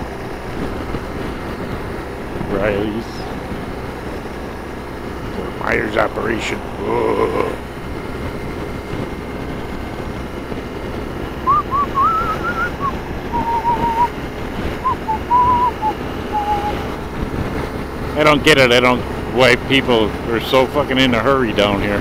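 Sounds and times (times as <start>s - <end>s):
motorcycle wind and road noise: 0.0s - 22.0s
person whistling a tune: 11.5s - 14.1s, 14.8s - 16.8s.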